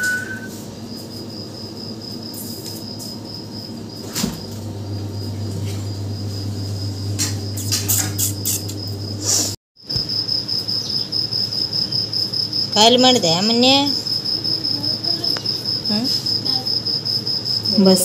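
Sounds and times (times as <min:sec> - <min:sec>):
insect trilling: 0:06.2 - 0:18.0.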